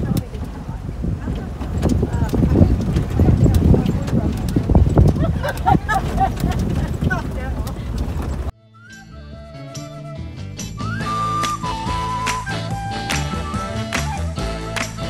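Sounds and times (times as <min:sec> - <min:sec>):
body and suspension rattling: 0:00.0 - 0:08.5
vehicle engine and tyre noise: 0:00.0 - 0:08.5.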